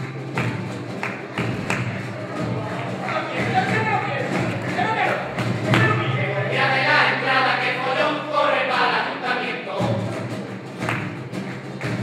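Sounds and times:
voices speaking on stage: 2.2s - 10.3s.

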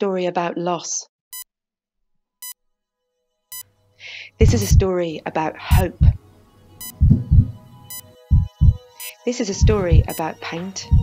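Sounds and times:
heartbeat thuds: 4.4s - 4.9s, 5.7s - 6.2s, 6.8s - 7.6s, 8.3s - 8.8s, 9.6s - 10.2s
steady electronic hum: 4.4s - 11.0s.

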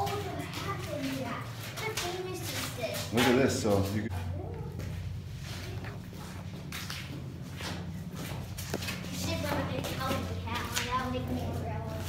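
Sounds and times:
footsteps on stone floor: 0.0s - 12.0s
low hum: 4.1s - 12.0s
indistinct voices talking: 9.0s - 12.0s.

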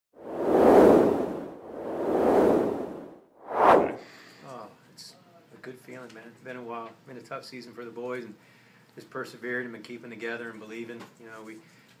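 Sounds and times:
whoosh sound effects: 0.3s - 4.0s.

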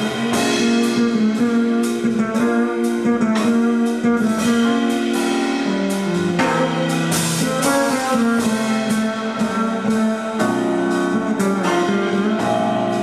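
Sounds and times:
keyboard chords: 0.0s - 13.0s
plucked bass line: 0.0s - 13.0s.

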